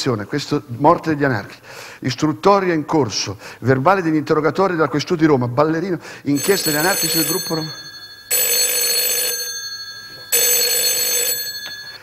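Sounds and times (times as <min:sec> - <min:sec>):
telephone bell ringing: 0:06.4 - 0:12.0.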